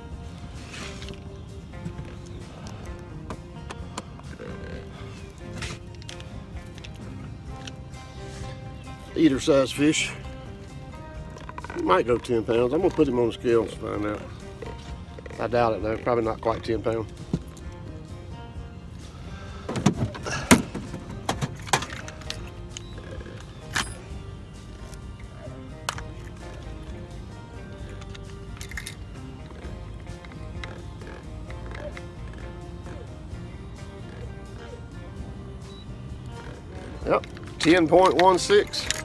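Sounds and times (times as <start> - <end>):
quiet background music: 0.0 - 39.0.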